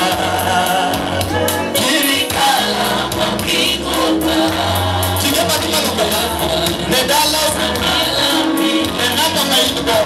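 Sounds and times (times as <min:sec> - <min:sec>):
band with bass line: 0:00.0 - 0:10.0
people singing gospel: 0:00.0 - 0:10.0.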